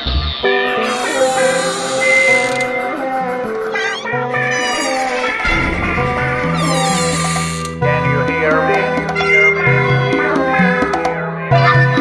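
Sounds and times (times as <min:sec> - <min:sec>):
hard techno music: 0:00.7 - 0:07.7.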